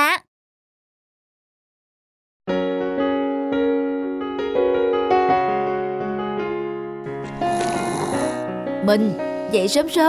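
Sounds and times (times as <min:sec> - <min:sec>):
gentle background music: 0:02.5 - 0:10.0
cartoon snoring: 0:07.4 - 0:08.5.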